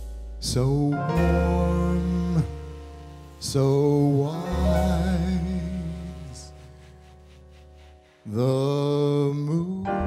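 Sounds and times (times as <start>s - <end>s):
slow jazz ballad with male singer: 0.3s - 10.0s.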